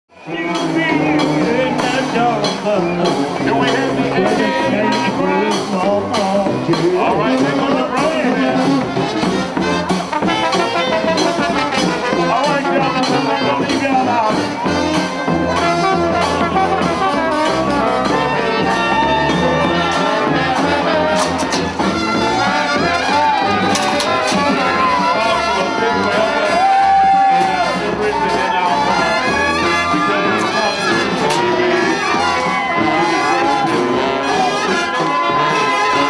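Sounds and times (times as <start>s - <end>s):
trombone: 0.1s - 36.0s
trumpet: 0.1s - 36.0s
bass drum beat: 0.2s - 36.0s
saxophone: 0.2s - 36.0s.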